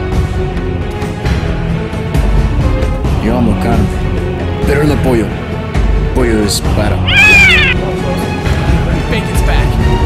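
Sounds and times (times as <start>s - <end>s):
background music: 0.0s - 10.0s
cat meowing: 7.1s - 7.8s.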